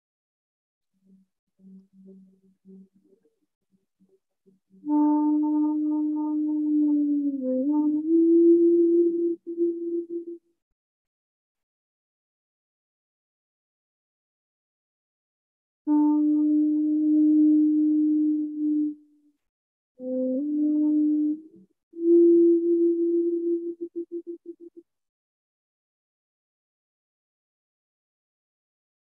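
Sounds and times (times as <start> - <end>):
bamboo flute playing a low note: 4.8 - 10.4, 15.9 - 19.2, 20.0 - 24.8.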